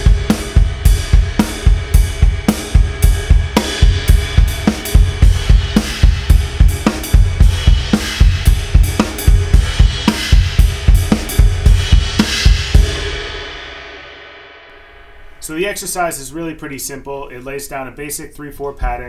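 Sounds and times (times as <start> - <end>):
bass drum pattern: 0.0 - 13.2
drum kit groove: 0.0 - 17.1.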